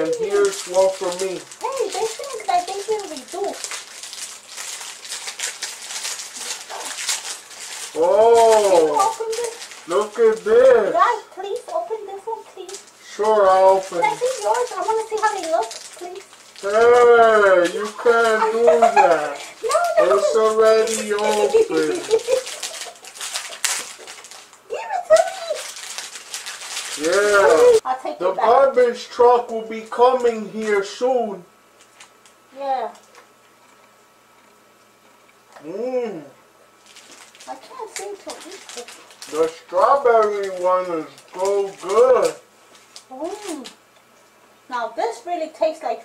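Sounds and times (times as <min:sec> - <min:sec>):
plastic wrapper crinkling: 0:00.0 - 0:27.8, 0:28.7 - 0:30.9, 0:31.8 - 0:33.9, 0:36.7 - 0:44.3.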